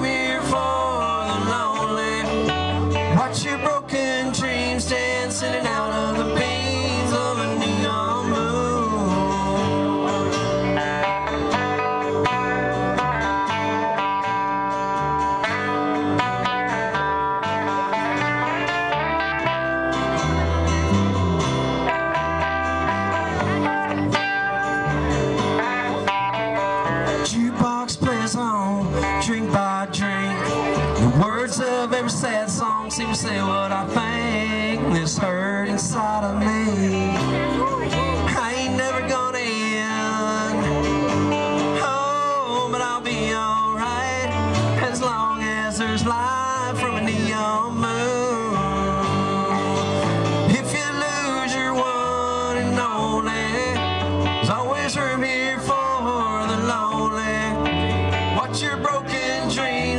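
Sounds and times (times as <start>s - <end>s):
electric and acoustic guitars: 0.0s - 59.9s
steady bass line: 0.0s - 59.9s.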